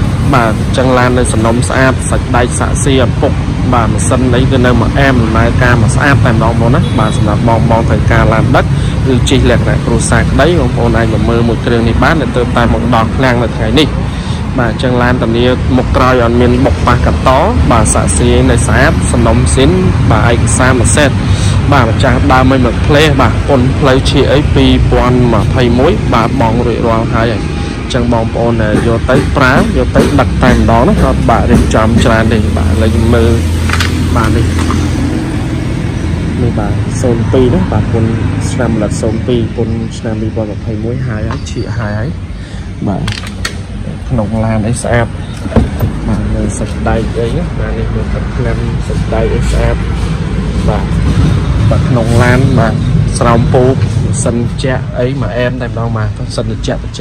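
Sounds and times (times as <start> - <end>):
man talking: 0.0 - 34.9, 36.3 - 57.0
person speaking: 0.0 - 35.2, 36.3 - 57.0
steady low rumble: 0.0 - 57.0.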